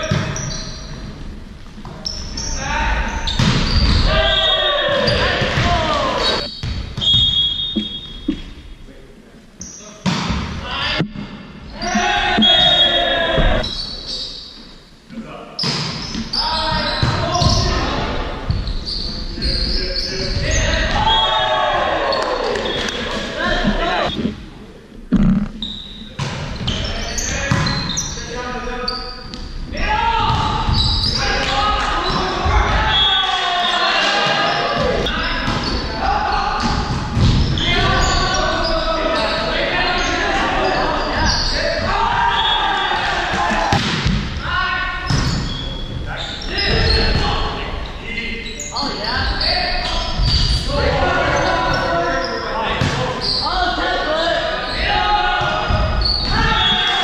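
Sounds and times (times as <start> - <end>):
volleyball hits and floor thuds: 3.3 - 4.2, 5.0 - 8.5, 10.0 - 11.4, 36.6 - 37.6, 43.3 - 44.4
players and spectators shouting: 3.9 - 6.5, 11.7 - 13.6, 20.3 - 24.2, 29.7 - 36.9, 37.6 - 43.8, 48.8 - 57.0.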